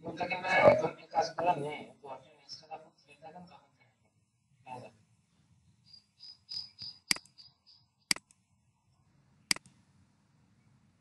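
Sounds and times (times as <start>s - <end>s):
cricket chirping: 5.8s - 8.0s.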